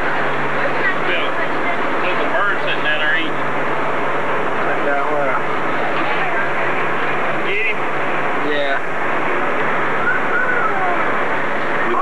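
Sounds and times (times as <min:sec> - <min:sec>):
indistinct voices talking: 0:00.0 - 0:12.0
steady rushing noise: 0:00.0 - 0:12.0.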